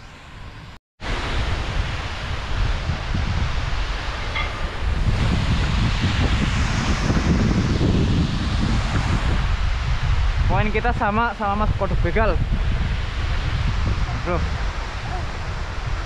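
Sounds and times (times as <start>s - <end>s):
wind buffeting microphone: 0.4s - 16.0s.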